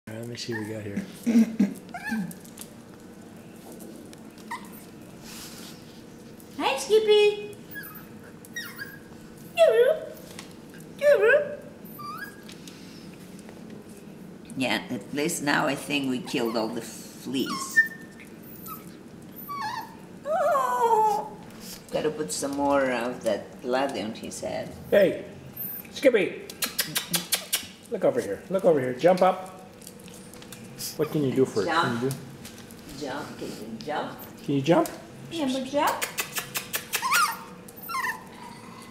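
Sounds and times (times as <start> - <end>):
dog whimpering: 0.4 - 2.5, 4.4 - 5.0, 7.7 - 10.2, 11.0 - 12.4, 16.2 - 21.4, 25.6 - 26.0, 31.0 - 31.5, 36.6 - 38.9
puppy yelping: 0.5 - 0.9, 4.4 - 4.9, 7.6 - 10.2, 11.0 - 12.5, 17.4 - 21.3, 25.6 - 26.0, 36.1 - 38.6.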